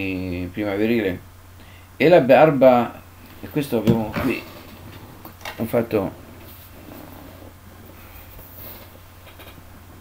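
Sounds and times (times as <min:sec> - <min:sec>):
faint room noise: 0:00.0 - 0:10.0
steady low hum: 0:00.0 - 0:10.0.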